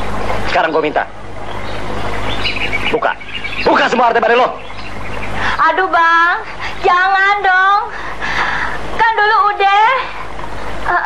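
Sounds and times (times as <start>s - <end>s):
birds chirping: 0.0s - 11.0s
steady hiss and low hum: 0.0s - 11.0s.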